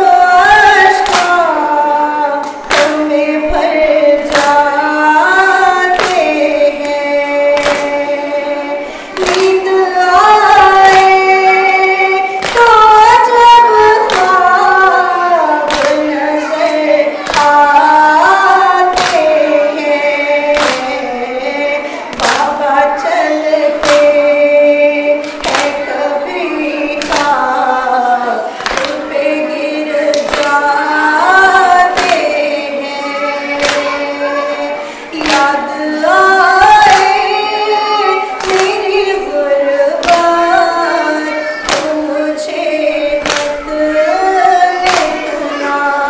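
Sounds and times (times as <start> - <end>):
voices singing lament: 0.0 - 46.0.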